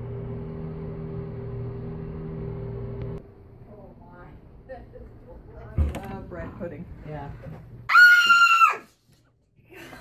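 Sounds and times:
shrill scream: 7.9 - 9.0.

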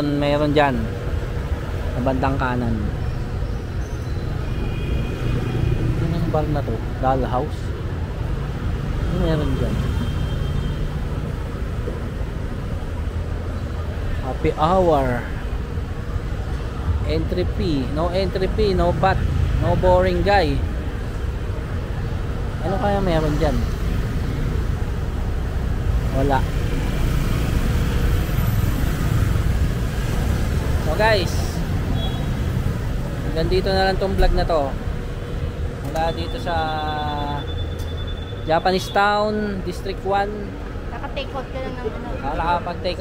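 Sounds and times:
city street traffic rumble: 0.0 - 43.0.

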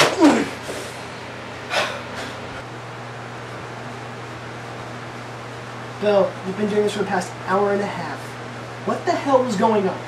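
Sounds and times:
constant low hum: 0.0 - 10.0.

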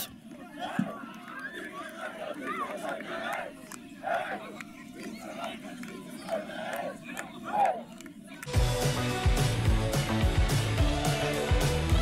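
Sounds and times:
crowd shouting and cheering: 0.0 - 12.0
music: 8.5 - 12.0.

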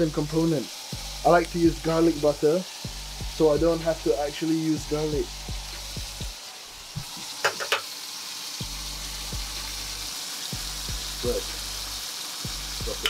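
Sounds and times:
steak sizzling in oil: 0.0 - 13.0.

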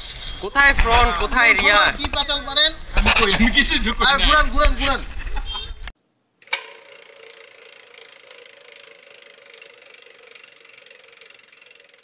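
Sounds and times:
rapid mechanical ratchet clicking: 6.4 - 12.0.

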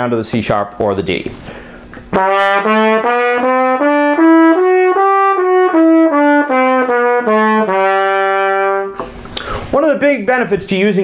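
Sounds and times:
trumpet playing a scale: 2.1 - 9.0.

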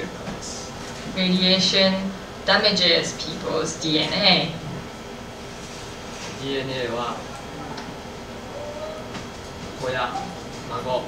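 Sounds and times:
steady room noise: 0.0 - 11.0
man speaking: 8.5 - 9.2.

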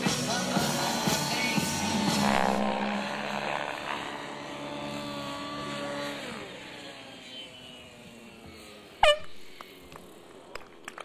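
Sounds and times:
music with falling sweep: 0.0 - 5.6
model helicopter rotor drone: 0.0 - 11.0.

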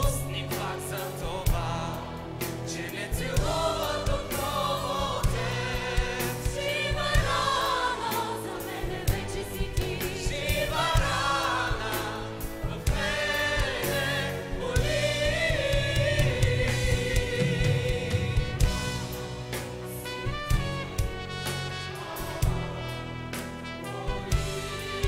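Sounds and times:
choir singing in harmony: 0.0 - 25.0.

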